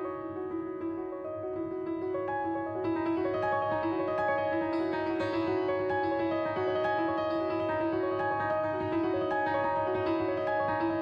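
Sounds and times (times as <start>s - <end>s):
solo jazz piano: 0.0s - 11.0s.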